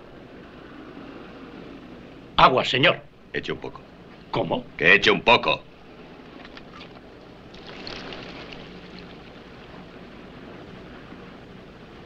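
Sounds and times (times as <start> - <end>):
steady background hiss: 0.0 - 12.0
liquid splashing on sandy ground: 6.4 - 10.0.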